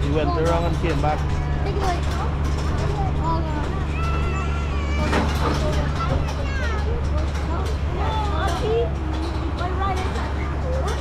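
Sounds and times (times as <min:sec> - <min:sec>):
people talking: 0:00.0 - 0:11.0
tractor engine running: 0:00.0 - 0:11.0.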